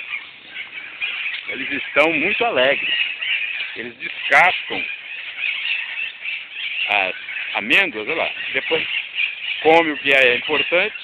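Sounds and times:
parrots screeching and chattering: 0.0s - 11.0s.

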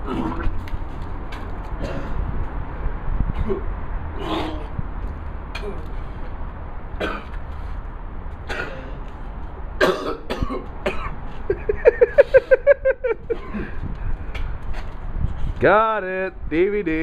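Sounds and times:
man coughing and clearing throat: 1.8s - 2.2s, 7.0s - 7.4s, 8.4s - 9.0s, 9.8s - 11.6s, 13.3s - 13.8s.

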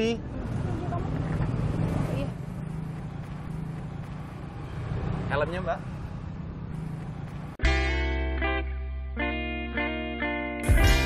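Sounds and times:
vehicle engine humming: 0.0s - 9.6s
street background noise: 0.0s - 11.0s.

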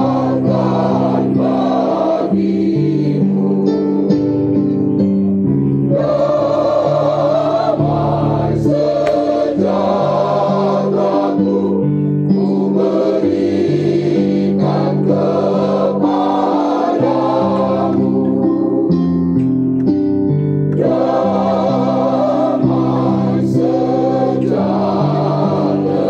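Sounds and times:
mixed choir singing gospel: 0.0s - 4.4s, 5.9s - 19.1s, 20.7s - 26.0s.

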